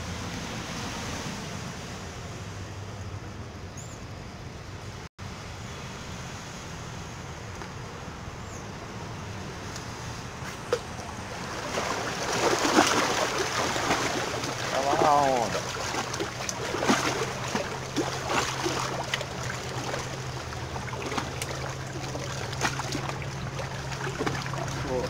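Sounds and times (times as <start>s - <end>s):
steady low hum: 2.4s - 25.0s
water splashing against rock: 10.6s - 25.0s.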